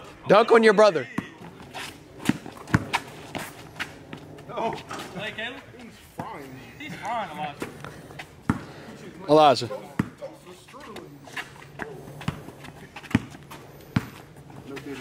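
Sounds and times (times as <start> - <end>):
players' voices: 0.0 - 15.0
basketball bouncing on concrete: 1.2 - 4.2, 6.1 - 8.8, 9.7 - 11.0, 11.8 - 14.9.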